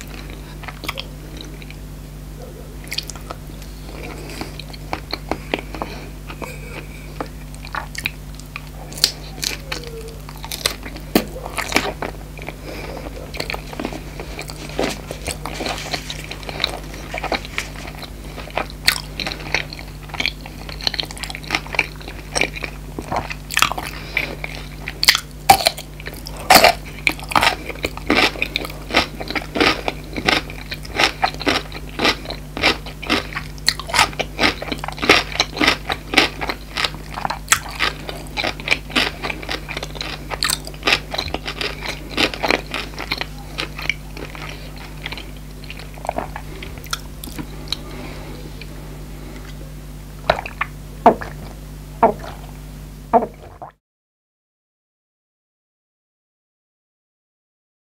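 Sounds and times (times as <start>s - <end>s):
faint low hum: 0.0s - 53.8s
person chewing crunchy food: 0.0s - 53.8s.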